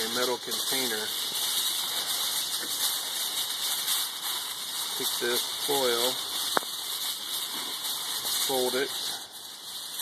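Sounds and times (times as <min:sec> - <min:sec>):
aluminium foil crinkling: 0:00.0 - 0:10.0
steady hiss: 0:00.0 - 0:10.0.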